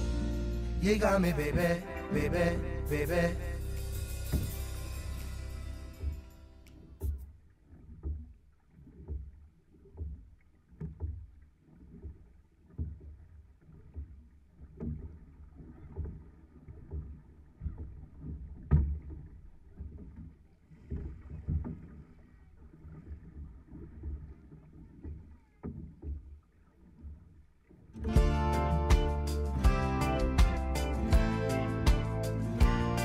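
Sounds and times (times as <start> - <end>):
paddle strokes: 0.0 - 33.0
water rumbling along hull: 3.6 - 29.7.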